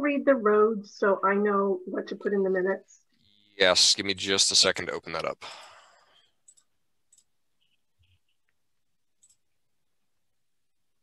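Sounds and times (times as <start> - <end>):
computer mouse clicks: 6.4 - 7.3, 9.2 - 9.5.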